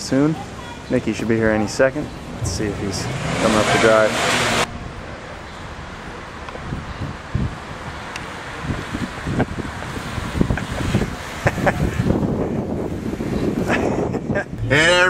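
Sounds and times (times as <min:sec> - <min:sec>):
street ambience: 0:00.0 - 0:15.0
nearby vehicle: 0:01.9 - 0:07.1
wind on microphone: 0:02.2 - 0:05.1, 0:06.6 - 0:15.0.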